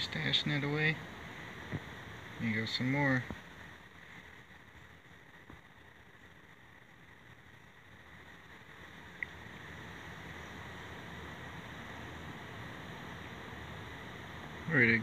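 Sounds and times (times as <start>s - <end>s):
faint background hiss: 0.0s - 15.0s.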